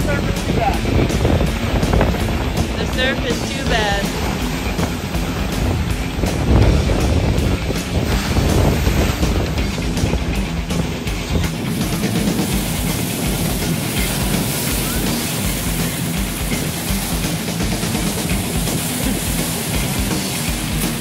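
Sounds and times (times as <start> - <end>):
music with low held notes: 0.0 - 21.0
steady rushing noise: 0.0 - 21.0.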